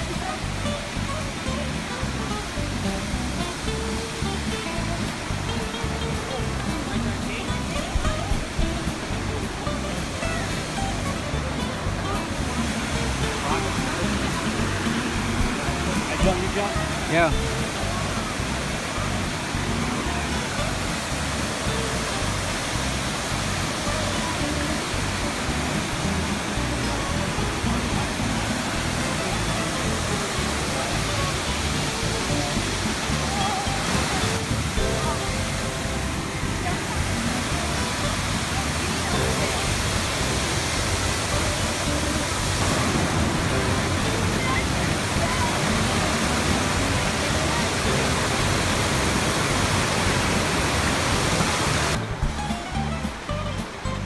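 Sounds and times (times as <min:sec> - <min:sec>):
waterfall and river rushing: 0:00.0 - 0:54.0.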